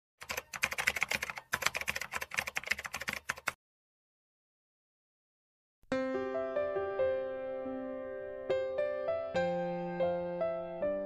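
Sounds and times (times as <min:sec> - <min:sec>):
fast keyboard typing: 0:00.2 - 0:03.6.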